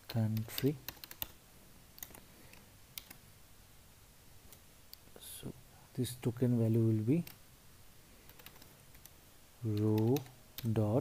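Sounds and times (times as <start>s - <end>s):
faint keyboard keystrokes: 8.3s - 10.8s.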